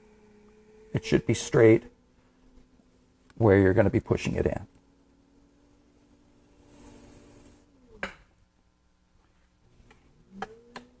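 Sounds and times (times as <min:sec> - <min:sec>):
electric potter's wheel hum: 0:00.0 - 0:11.0.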